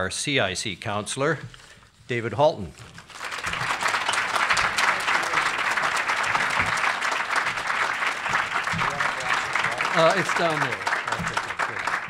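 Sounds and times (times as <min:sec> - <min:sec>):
audience applauding: 0:02.9 - 0:12.0.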